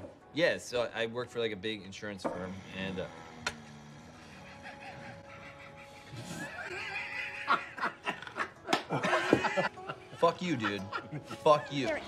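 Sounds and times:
people laughing: 4.2 - 12.0.

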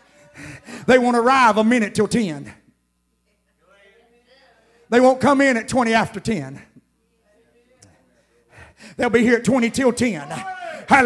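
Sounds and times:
man preaching: 0.2 - 2.7, 4.9 - 6.8, 8.7 - 11.0.

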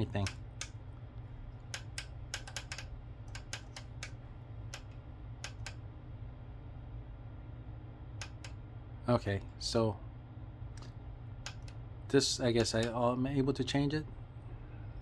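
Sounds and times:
steady low hum: 0.0 - 15.0
push button clicks: 12.6 - 13.0.

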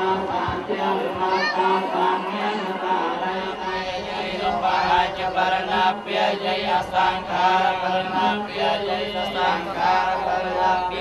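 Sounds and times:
men chanting together: 0.0 - 11.0.

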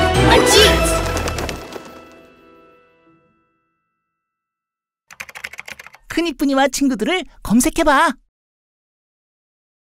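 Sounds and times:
keyboard typing clicks: 5.1 - 6.0.

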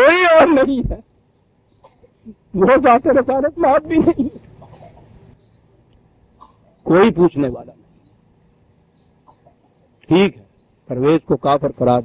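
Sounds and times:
recording hiss: 0.0 - 12.0
man speaking: 2.3 - 4.3, 6.8 - 7.9, 10.0 - 12.0.

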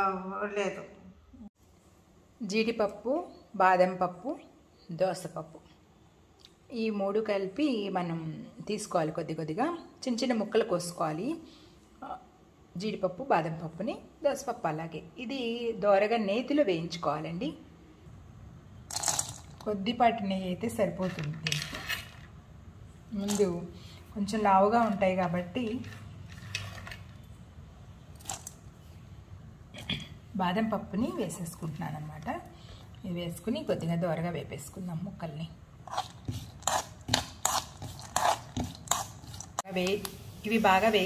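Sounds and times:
woman speaking: 0.0 - 1.0, 19.6 - 21.8, 23.1 - 25.9, 30.3 - 35.6, 39.6 - 41.0
nuts rattling in a pan: 18.9 - 19.6
spatula scraping a pan: 35.9 - 39.6
short hissing noises: 39.8 - 41.0.

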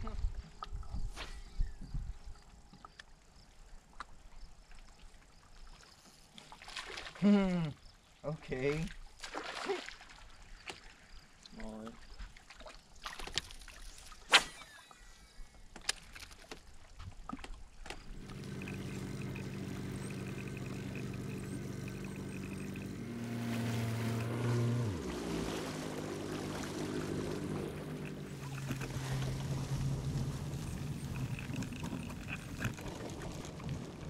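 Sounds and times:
outboard motor running: 17.9 - 34.0
tow vehicle engine: 18.1 - 34.0.

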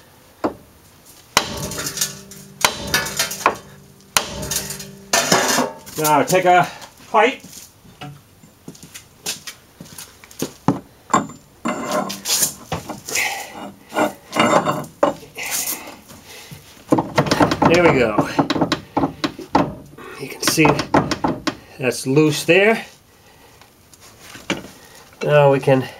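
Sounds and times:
metal clanks and scrapes: 1.4 - 6.5, 11.1 - 15.2
man talking: 6.0 - 7.4, 17.6 - 18.4, 20.0 - 20.9, 25.2 - 25.9.

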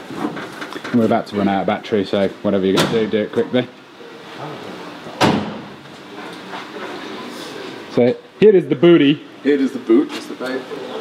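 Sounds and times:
steel car door slamming: 5.2 - 5.8.

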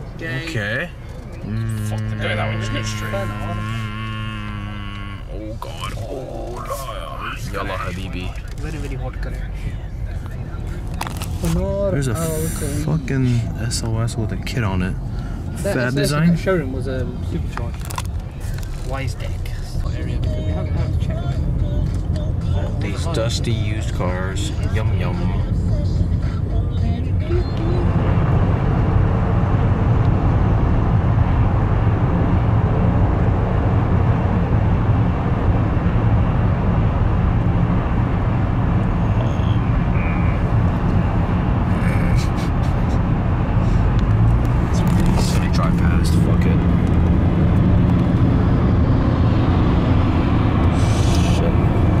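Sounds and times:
car road and engine rumble: 0.0 - 52.0.

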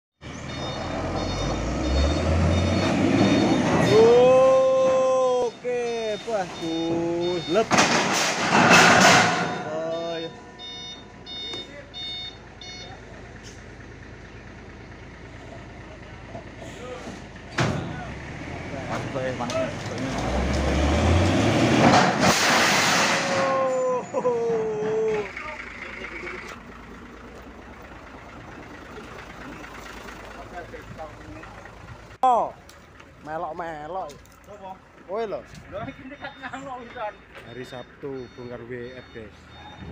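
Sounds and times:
truck engine revving: 0.2 - 32.2
reversing alarm beeps: 0.3 - 7.9, 9.2 - 13.0, 35.7 - 39.9
men calling out: 3.5 - 7.8, 23.3 - 26.6, 33.2 - 39.9.

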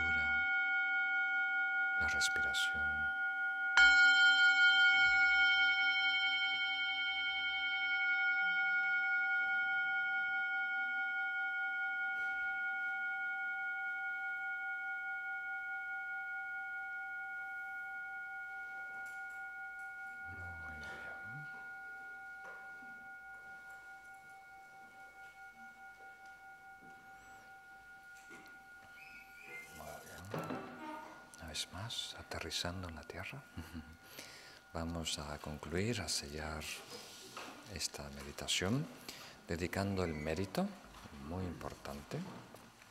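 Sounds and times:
meditation bell ringing: 0.0 - 42.9.

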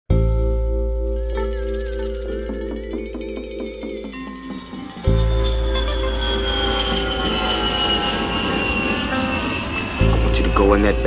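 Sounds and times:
sustained music with deep bass: 0.1 - 11.0
jet engine whine: 3.0 - 11.0.

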